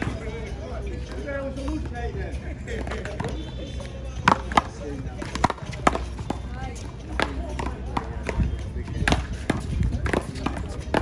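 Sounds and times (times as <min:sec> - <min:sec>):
paddles hitting ball: 0:04.2 - 0:06.4, 0:07.1 - 0:11.0.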